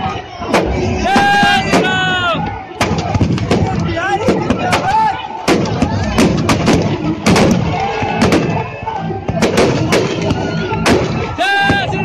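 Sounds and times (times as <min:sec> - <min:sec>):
firecrackers banging: 0:02.8 - 0:11.9.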